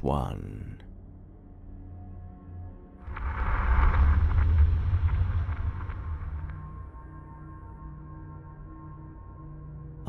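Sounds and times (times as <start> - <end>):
deep rumble with crackling hiss: 3.1 - 8.1.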